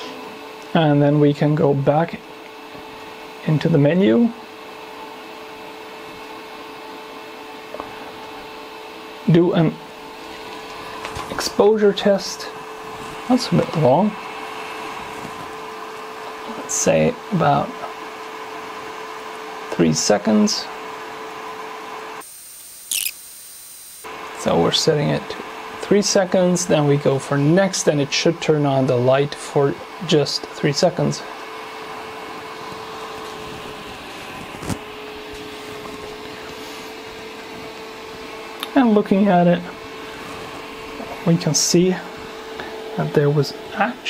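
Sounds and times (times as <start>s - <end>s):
electric fan whirring: 0.0s - 44.0s
sharp click: 22.9s - 23.2s.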